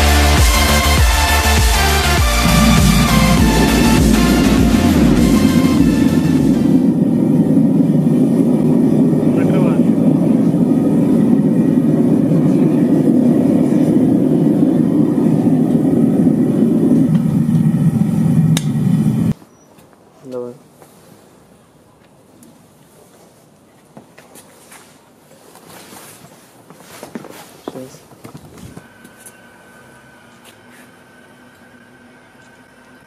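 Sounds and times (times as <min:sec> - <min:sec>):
gas burner rushing: 0:00.0 - 0:19.4.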